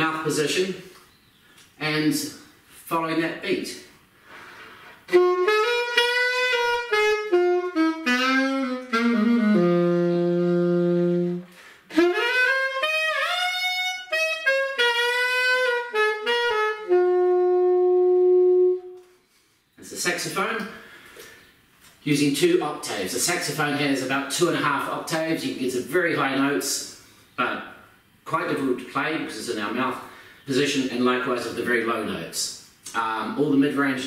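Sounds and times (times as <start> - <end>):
man talking: 0.0 - 1.0, 1.8 - 4.0, 19.8 - 20.8, 22.0 - 34.0
alto saxophone playing: 5.0 - 19.2.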